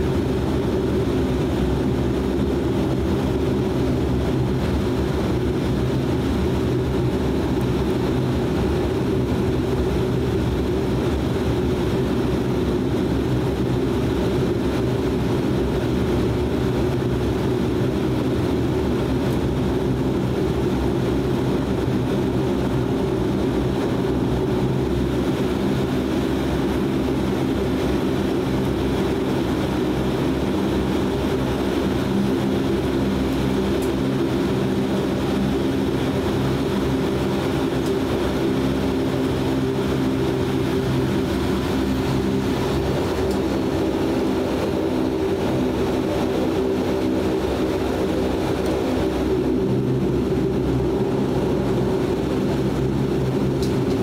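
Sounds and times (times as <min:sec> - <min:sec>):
turboprop engine drone: 0:00.0 - 0:54.0.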